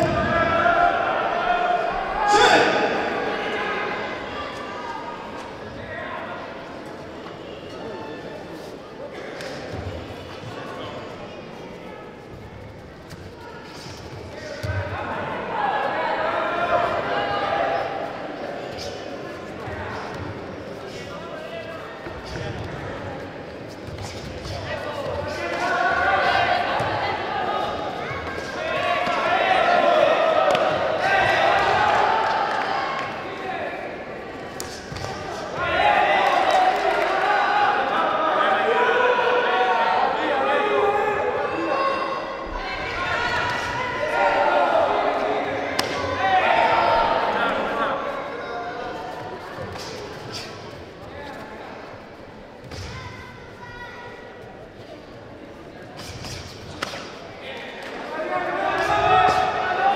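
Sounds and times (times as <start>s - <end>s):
people shouting: 0.0s - 4.0s, 34.7s - 49.1s, 58.1s - 59.9s.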